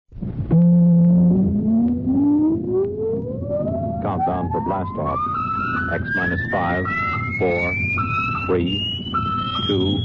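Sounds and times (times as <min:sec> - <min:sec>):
low rumble: 0:00.2 - 0:10.0
rising tone: 0:00.2 - 0:10.0.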